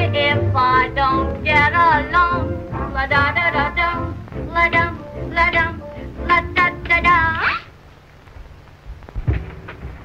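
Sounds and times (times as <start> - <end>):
optical soundtrack hiss and crackle: 0.0 - 10.0
low thump: 9.2 - 10.0.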